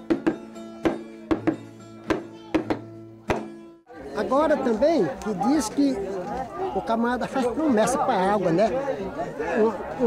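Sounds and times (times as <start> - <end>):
sharp irregular knocks: 0.0 - 3.7
folk dance music with held notes: 0.0 - 4.1.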